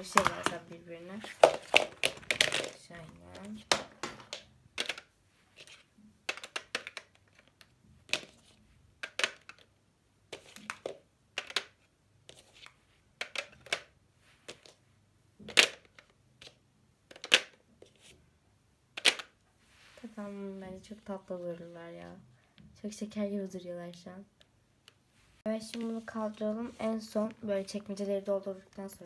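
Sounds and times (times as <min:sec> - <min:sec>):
plastic pens clicking on tray: 0:03.7 - 0:05.1, 0:06.3 - 0:08.3, 0:09.0 - 0:09.7, 0:10.4 - 0:11.8, 0:13.2 - 0:13.9, 0:15.5 - 0:17.6.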